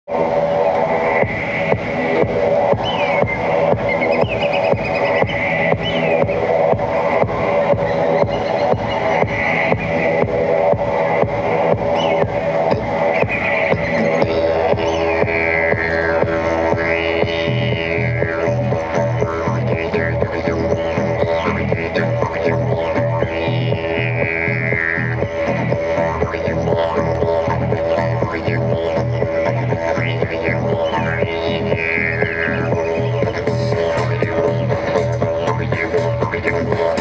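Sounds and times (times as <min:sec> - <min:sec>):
low sustained drone: 0:00.1 - 0:37.0
music with fast beat: 0:00.1 - 0:37.0.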